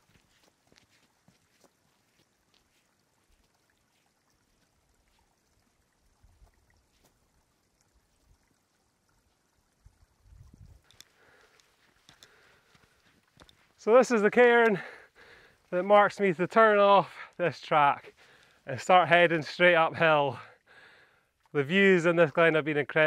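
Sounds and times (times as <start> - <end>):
faint ticks: 10.6 - 13.8, 18.2 - 18.7
man speaking: 13.8 - 15.0, 15.7 - 20.5, 21.6 - 23.0.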